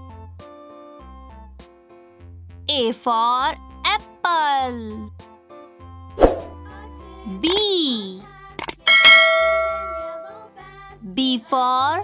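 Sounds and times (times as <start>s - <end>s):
bell-like ding: 8.8s - 10.4s.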